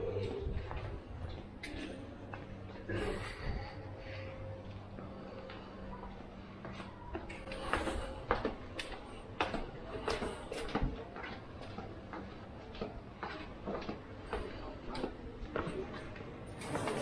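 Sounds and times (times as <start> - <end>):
people talking: 0.0 - 17.0
footsteps on stone steps: 0.2 - 3.7, 4.7 - 17.0.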